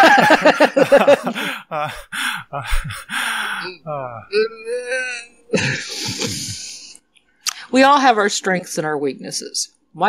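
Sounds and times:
person laughing: 0.0s - 6.9s
person hesitating uh: 1.4s - 6.9s.

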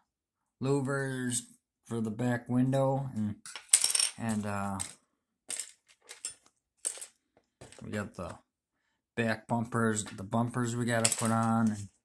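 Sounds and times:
plastic parts clicking and clattering: 3.4s - 8.4s, 10.9s - 12.0s.

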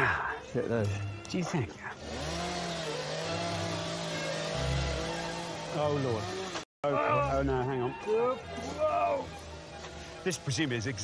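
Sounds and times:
small engine running: 0.6s - 11.0s.

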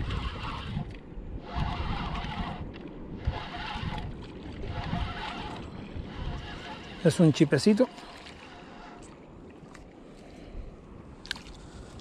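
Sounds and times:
fishing reel whirring: 0.0s - 9.2s
water: 0.0s - 12.0s
wind: 0.0s - 12.0s.

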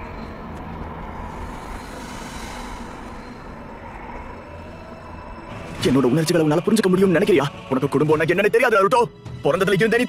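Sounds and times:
rushing background rumble: 0.0s - 10.0s.

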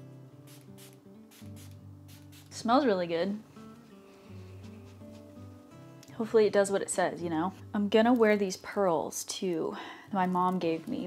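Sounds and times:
soft background music: 0.0s - 11.0s
spray bottle spritzes: 0.4s - 2.6s.

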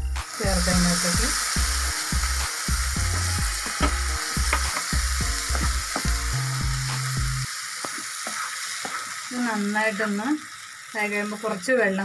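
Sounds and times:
low background music: 0.0s - 7.5s
masala sizzling in a frying pan: 0.0s - 12.0s
spatula scraping and tapping pan: 3.1s - 6.2s, 7.8s - 9.1s.

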